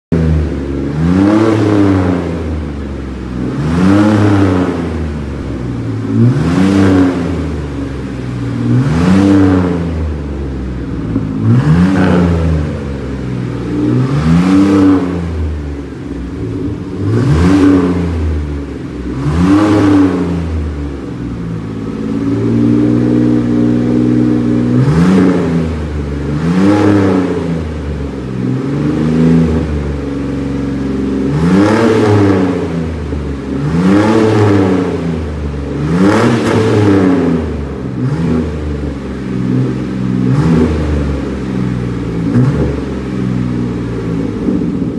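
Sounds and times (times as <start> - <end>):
van engine revving: 0.1 - 44.9.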